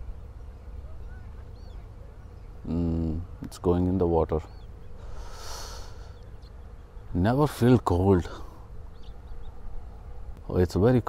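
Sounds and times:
faint outdoor background noise: 0:00.0 - 0:11.0
breathy sniff: 0:05.0 - 0:06.2.

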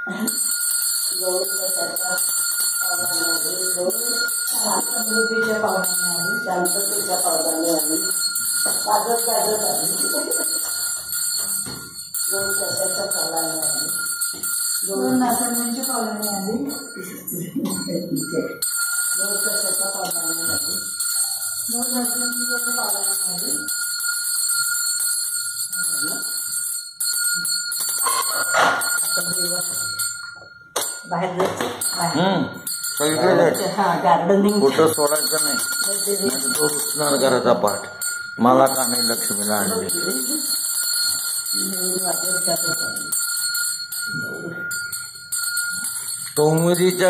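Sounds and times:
hand bell ringing: 0:00.0 - 0:47.0
people's voices: 0:14.9 - 0:18.6.

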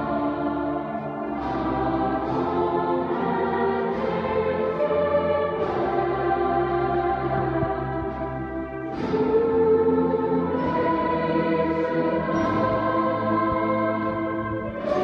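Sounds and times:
choir singing sustained chords: 0:00.0 - 0:15.0.

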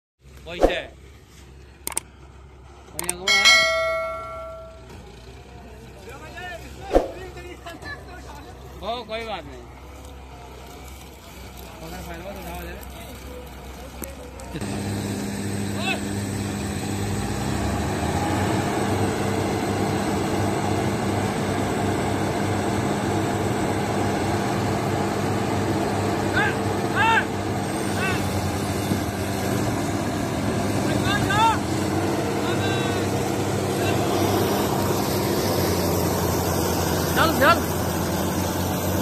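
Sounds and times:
diesel engines running: 0:00.2 - 0:39.0.

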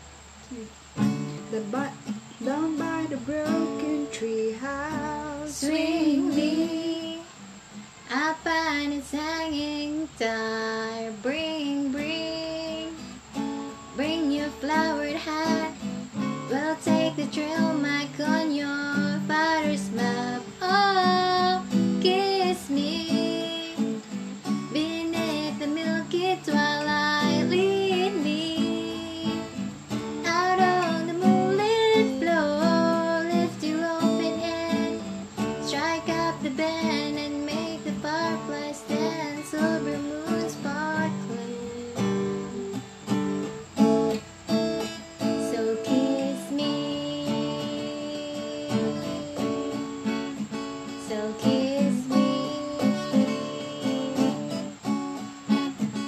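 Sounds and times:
acoustic guitar strumming: 0:01.0 - 0:56.0
person singing without words: 0:01.4 - 0:07.4, 0:08.0 - 0:13.3, 0:13.9 - 0:42.7, 0:45.2 - 0:50.0, 0:50.9 - 0:54.8.

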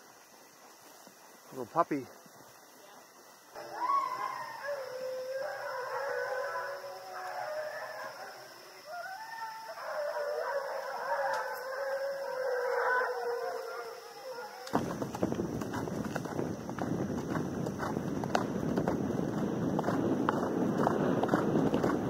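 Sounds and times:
hounds baying: 0:03.6 - 0:14.7.

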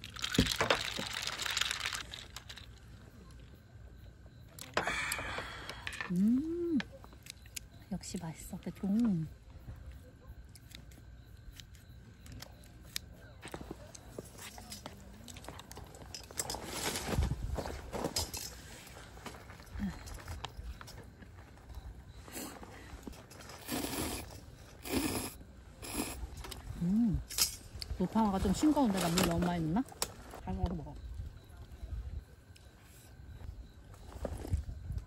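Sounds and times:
foil lid crinkling: 0:00.0 - 0:02.8.

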